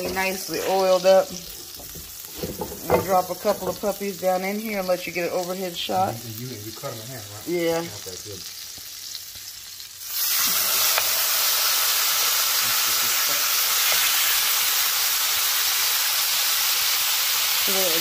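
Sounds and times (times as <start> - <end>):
meat sizzling in a frying pan: 0.0 - 18.0
oil hissing in a pan: 0.0 - 18.0.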